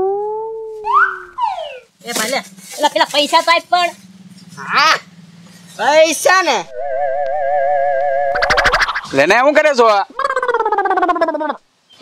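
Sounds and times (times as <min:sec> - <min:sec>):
whistle-like rising glide: 0:06.6 - 0:09.2
ringing electronic tone bending: 0:06.7 - 0:09.1.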